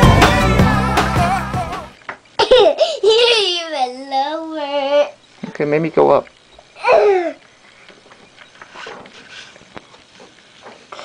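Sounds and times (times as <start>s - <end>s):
small rustling: 4.9s - 11.0s
child squealing: 6.8s - 7.4s
soft breathing: 8.7s - 11.0s.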